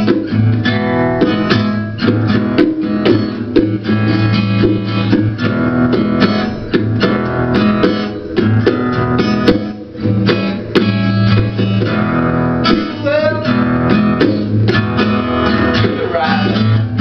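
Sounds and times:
acoustic guitar blues: 0:00.0 - 0:17.0
bongos tapping: 0:00.0 - 0:17.0.

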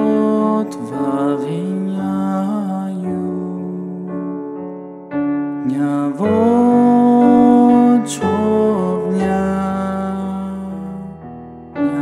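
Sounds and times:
person chanting: 0:00.0 - 0:04.4, 0:05.6 - 0:12.0
soft sustained keyboard: 0:00.0 - 0:12.0.

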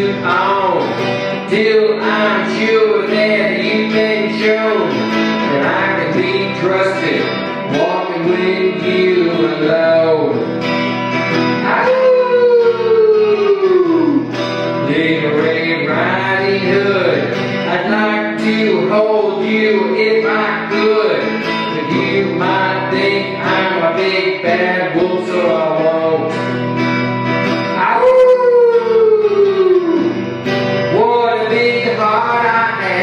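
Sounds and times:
guitar backing: 0:00.0 - 0:33.0
man imitating wolf howl: 0:11.8 - 0:14.4, 0:27.8 - 0:30.2.

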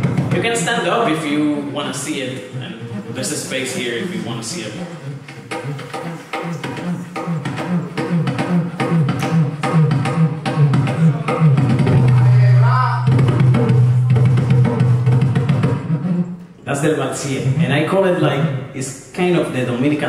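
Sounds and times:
hand drum played in quick rhythm: 0:00.0 - 0:00.9, 0:04.7 - 0:16.2.

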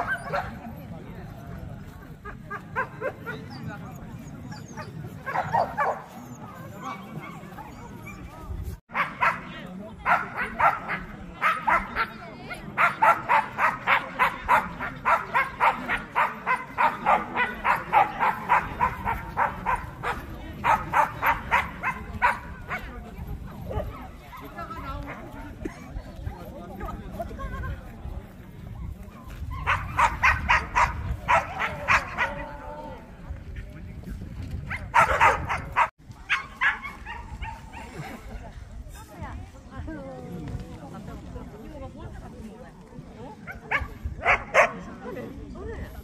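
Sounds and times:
people talking: 0:00.0 - 0:46.0
dog barking: 0:05.2 - 0:06.1, 0:08.9 - 0:12.1, 0:12.8 - 0:22.9, 0:29.6 - 0:32.4, 0:34.9 - 0:37.8, 0:43.5 - 0:44.8.

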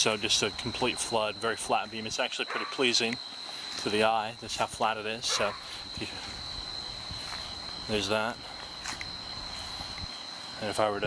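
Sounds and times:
crickets trilling: 0:00.0 - 0:11.0
man's voice: 0:10.6 - 0:11.0.

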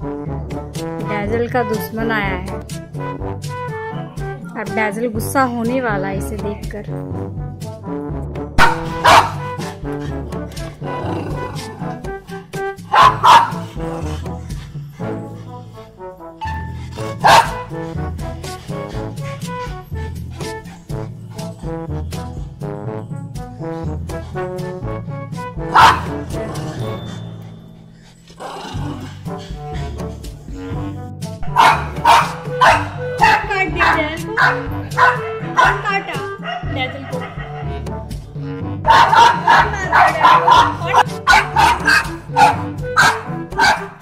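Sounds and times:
background music: 0:00.0 - 0:44.0
dog barking: 0:08.6 - 0:09.8, 0:12.8 - 0:14.2, 0:17.0 - 0:17.8, 0:25.6 - 0:26.9, 0:31.4 - 0:37.8, 0:38.8 - 0:44.0.

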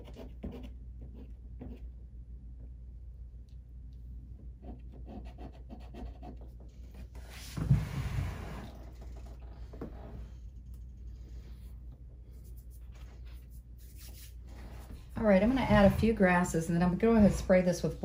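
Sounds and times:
low steady hum: 0:00.0 - 0:18.0.

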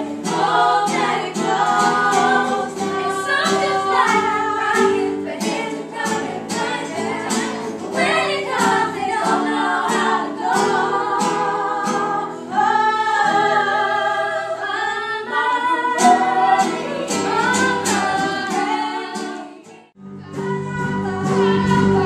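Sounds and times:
strummed acoustic guitar: 0:00.0 - 0:14.8, 0:15.6 - 0:22.0
girls singing together: 0:00.0 - 0:22.0.

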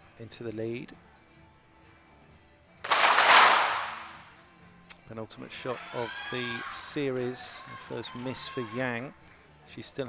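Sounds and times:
pistol shot crack: 0:02.9 - 0:04.3.

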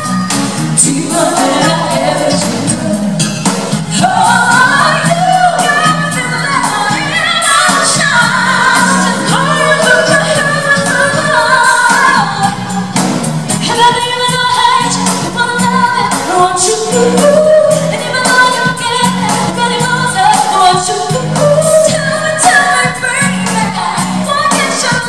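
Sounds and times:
backing singers: 0:00.0 - 0:13.6
keyboard guitar and bass: 0:00.0 - 0:25.0
woman singing lead vocals: 0:00.0 - 0:25.0.

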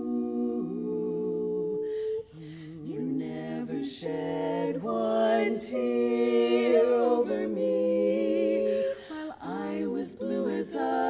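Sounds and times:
women singing close harmony: 0:00.0 - 0:11.0.

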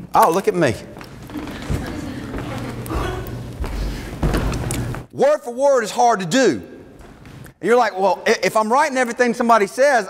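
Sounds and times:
steady low hum: 0:00.0 - 0:05.1
footsteps on wooden stage: 0:00.8 - 0:05.1, 0:06.9 - 0:07.5.

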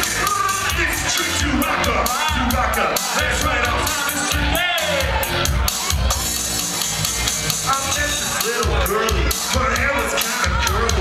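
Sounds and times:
hip-hop beat with guitar riff: 0:00.0 - 0:11.0.

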